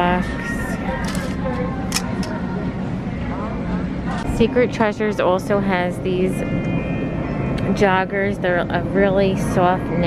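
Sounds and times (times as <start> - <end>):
low store hum: 0.0 - 10.0.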